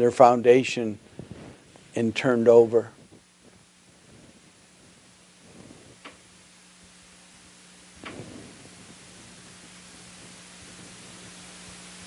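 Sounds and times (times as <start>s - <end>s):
low hum: 0.0s - 12.0s
soft hiss: 0.0s - 12.0s.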